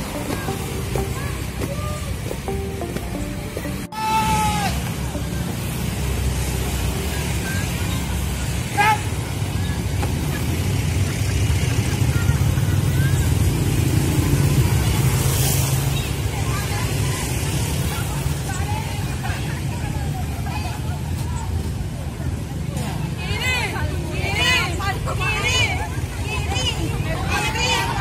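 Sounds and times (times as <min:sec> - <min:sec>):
crowd voices: 0:00.0 - 0:28.0
low street rumble: 0:00.0 - 0:28.0
motorcycle engines passing: 0:00.0 - 0:28.0.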